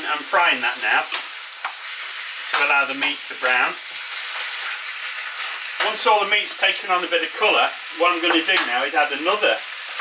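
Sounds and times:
meat sizzling in hot oil: 0.0 - 10.0.

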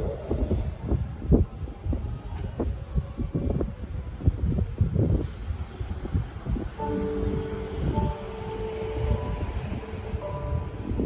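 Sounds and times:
loud low rumble: 0.0 - 11.0
soft chords over pa system: 6.8 - 11.0.

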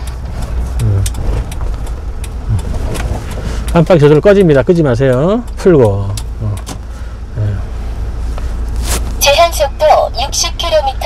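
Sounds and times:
truck engine and road rumble: 0.0 - 11.0
person speaking: 0.8 - 1.3, 7.3 - 7.8.

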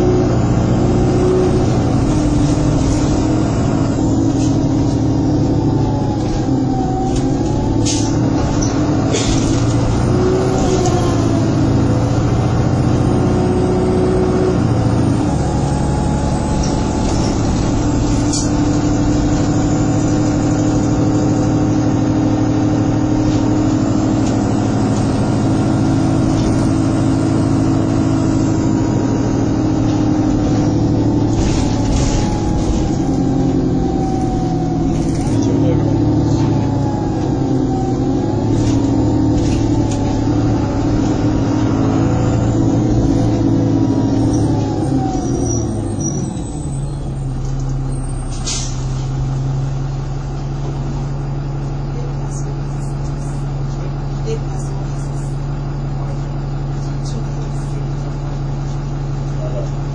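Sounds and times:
bus engine running: 0.0 - 59.9.

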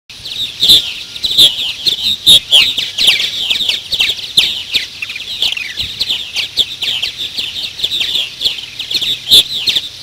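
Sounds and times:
birds chirping: 0.1 - 10.0.

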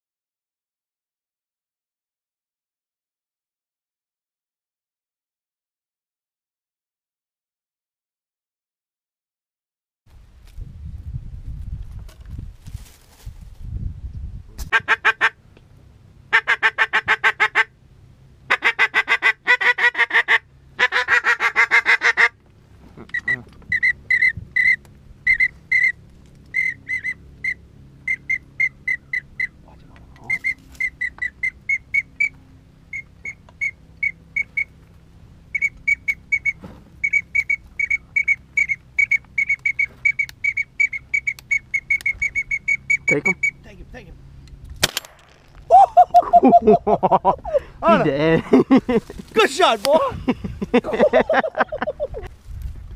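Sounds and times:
raspy duck calls: 14.7 - 15.4, 16.3 - 17.8, 18.5 - 34.8, 35.5 - 43.7
high duck whistle peeps: 23.1 - 29.5, 32.9 - 34.7, 35.5 - 43.6.

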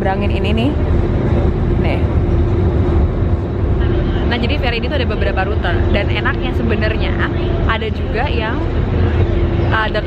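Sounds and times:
ferry engine drone: 0.0 - 10.0
wind rumble on microphone: 0.0 - 10.0.

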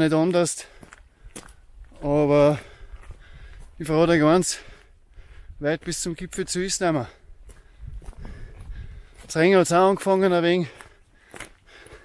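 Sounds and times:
footsteps on stony track: 0.0 - 12.0
person breathing: 2.5 - 3.8, 4.5 - 5.6, 7.0 - 9.3, 10.6 - 12.0.

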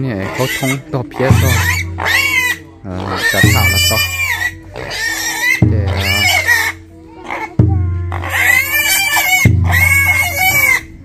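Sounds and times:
pig squealing: 0.0 - 11.0.

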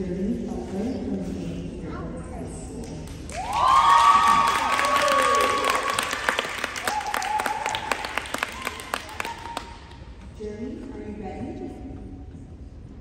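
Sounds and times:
group clapping and cheering: 3.1 - 10.1
high-pitched whoops: 3.3 - 9.8.

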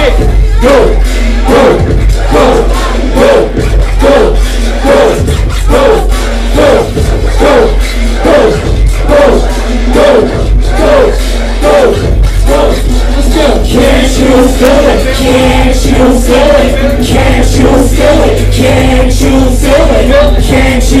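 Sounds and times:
crowd voices: 0.0 - 21.0
deep bass line: 0.0 - 21.0
loud hip-hop over club speakers: 0.0 - 21.0
repeating vocal figure: 0.0 - 21.0.

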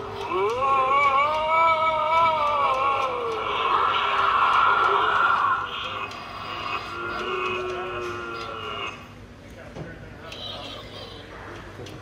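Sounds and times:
wavering voice-like moan: 0.0 - 9.2.

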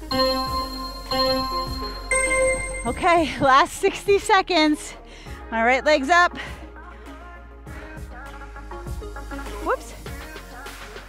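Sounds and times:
higher longer timer tone: 0.0 - 3.4
interval timer beep: 0.0 - 3.5.

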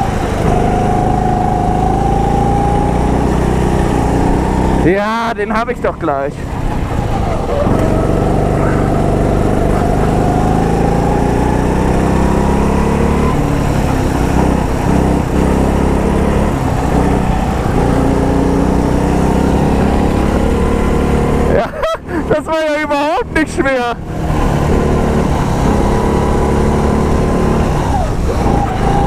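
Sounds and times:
go-kart engine accelerating: 0.0 - 29.0.

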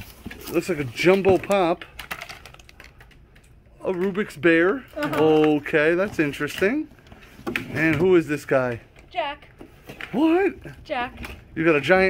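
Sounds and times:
plastic packaging crinkling: 0.0 - 3.4
person speaking: 3.8 - 6.9.

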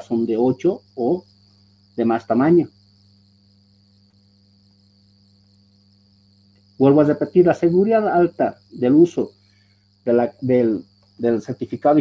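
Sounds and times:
high-pitched continuous whine: 0.0 - 12.0.

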